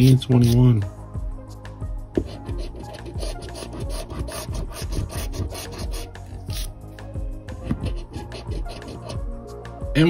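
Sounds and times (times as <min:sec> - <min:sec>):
coin scratching lottery ticket: 0:02.3 - 0:06.7, 0:07.9 - 0:09.2.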